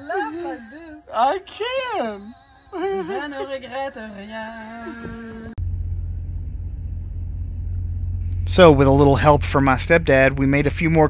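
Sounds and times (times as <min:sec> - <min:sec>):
diesel truck engine idling: 0:04.8 - 0:11.0.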